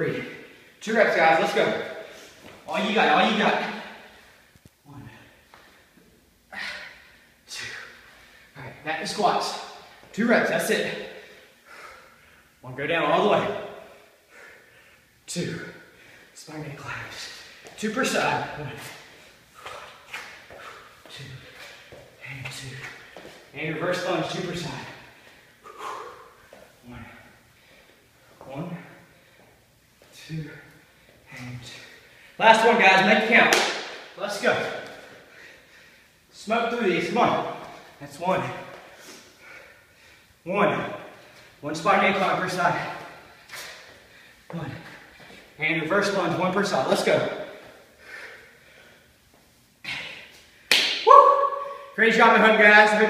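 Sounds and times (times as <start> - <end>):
man counting: 0.0 - 4.2, 4.8 - 5.4, 7.4 - 11.2, 12.6 - 14.0, 15.3 - 27.4, 28.4 - 29.1, 30.1 - 35.1, 36.3 - 38.9, 40.4 - 43.9, 44.5 - 47.6
man breathing hard: 3.6 - 8.6, 11.0 - 12.6, 13.9 - 15.2, 19.1 - 22.0, 24.8 - 28.4, 34.9 - 36.2, 38.7 - 40.4, 47.7 - 49.2.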